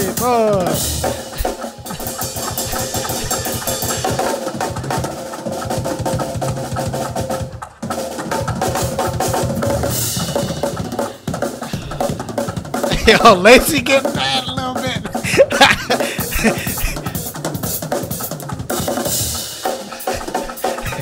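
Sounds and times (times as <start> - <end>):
snare and tom fills: 0.0 - 21.0.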